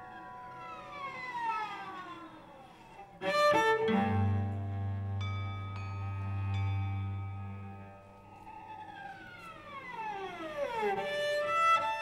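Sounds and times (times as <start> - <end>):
bowed string downward glissando: 3.2 - 12.0
singing bowls ringing: 4.8 - 8.8.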